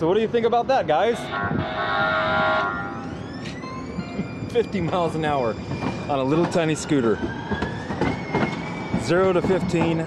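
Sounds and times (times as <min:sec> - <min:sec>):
trolley horn steady note: 0:01.1 - 0:03.3.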